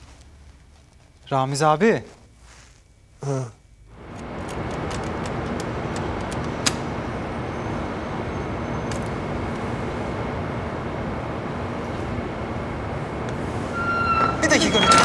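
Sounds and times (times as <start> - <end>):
street traffic: 3.9 - 15.0.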